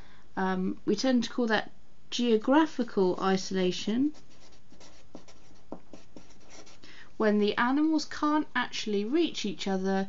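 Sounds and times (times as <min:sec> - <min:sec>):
faint steady hiss: 0:00.0 - 0:10.0
marker pen writing on paper: 0:04.1 - 0:06.8.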